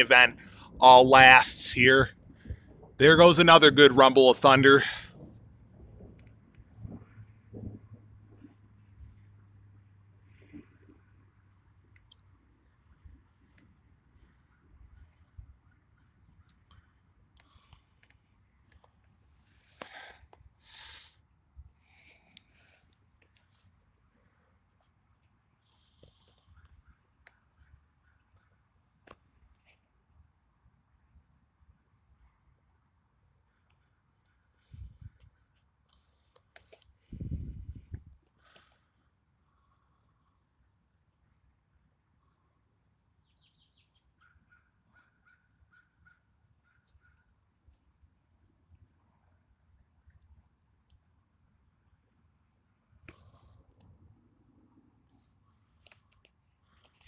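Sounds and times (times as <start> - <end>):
birds chirping: 43.2 - 47.3.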